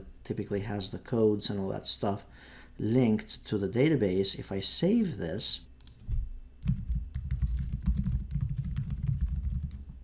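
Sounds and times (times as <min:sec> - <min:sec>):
typing on keyboard: 0:06.6 - 0:10.0.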